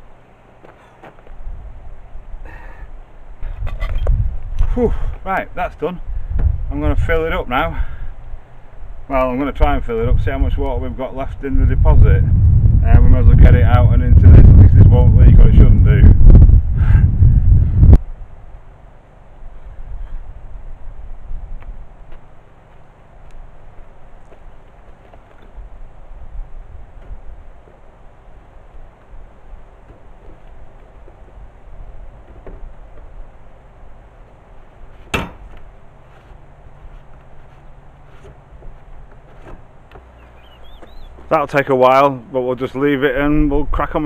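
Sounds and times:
wind buffeting microphone: 3.3s - 18.4s, 19.4s - 22.2s.

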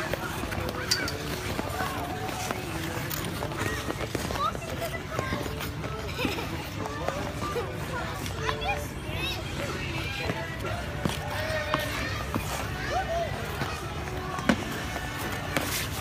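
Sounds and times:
voices and shrieks of skaters: 0.0s - 16.0s.

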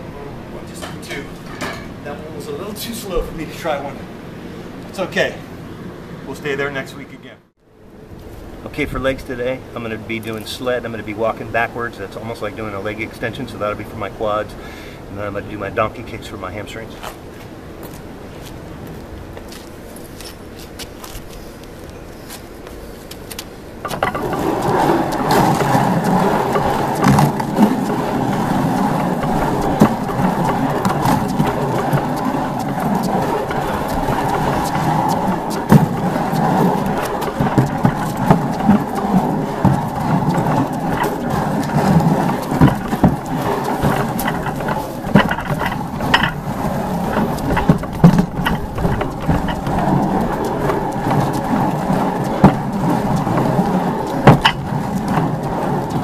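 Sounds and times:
sled scraping across concrete: 8.7s - 14.6s, 15.2s - 56.0s
knocks and rattles: 23.8s - 56.0s.

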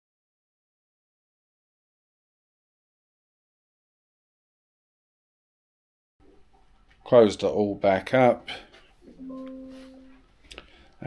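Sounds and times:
chime-like plucked note: 9.1s - 10.2s.

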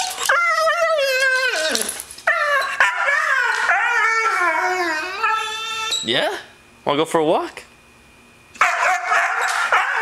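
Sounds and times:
dog howling and whining: 0.0s - 6.4s, 8.6s - 10.0s.

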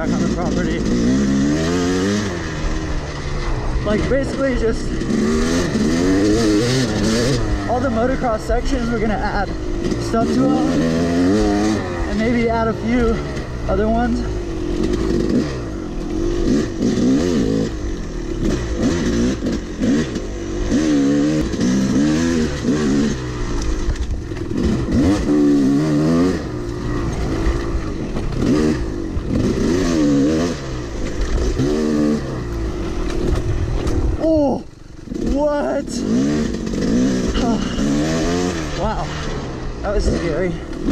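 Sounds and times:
dirt bike engine revving: 0.0s - 40.9s.

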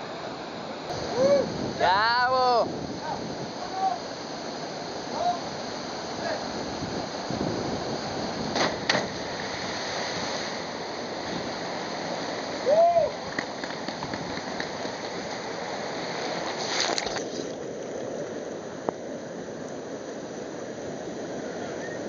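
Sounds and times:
water rushing: 0.0s - 22.0s.

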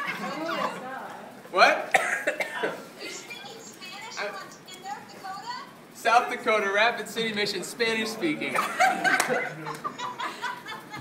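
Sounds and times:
laughter: 8.5s - 11.0s.

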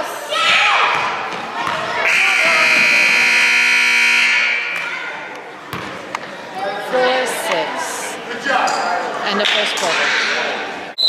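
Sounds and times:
scoreboard buzzer tone: 2.1s - 4.8s.

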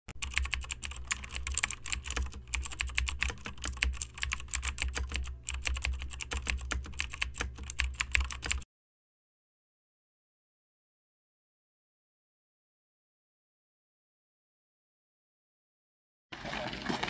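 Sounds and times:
rapid irregular clicking: 0.1s - 8.6s.

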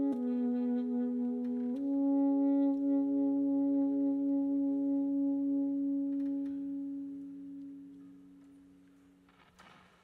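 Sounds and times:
saxophone long note: 0.0s - 8.6s.

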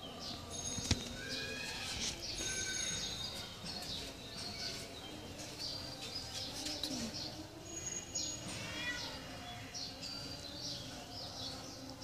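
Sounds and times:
background noise: 0.0s - 12.0s
birds chirping: 0.0s - 12.0s.

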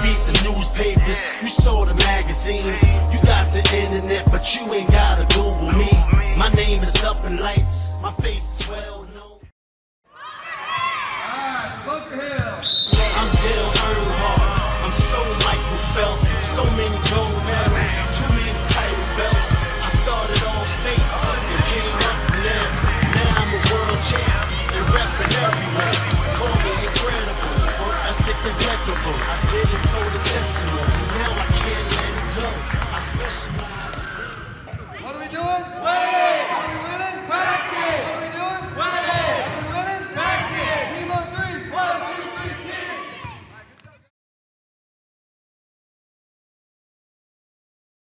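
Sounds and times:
background music: 0.0s - 9.5s, 12.9s - 33.9s
short high whistle blast: 12.6s - 13.2s
basketballs bouncing on hardwood: 22.2s - 25.1s.

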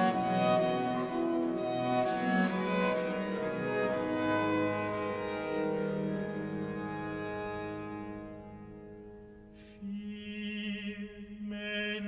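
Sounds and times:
bowed string ensemble: 0.0s - 10.7s.

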